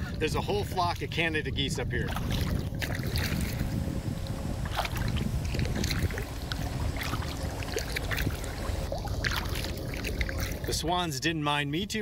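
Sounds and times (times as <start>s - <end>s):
wind rumble on microphone: 0.0s - 11.2s
paddle splashing water: 2.1s - 3.7s, 4.6s - 10.8s.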